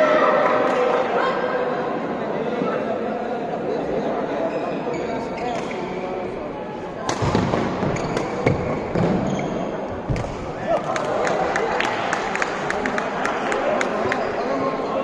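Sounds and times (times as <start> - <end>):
murmur of spectators: 0.0 - 15.0.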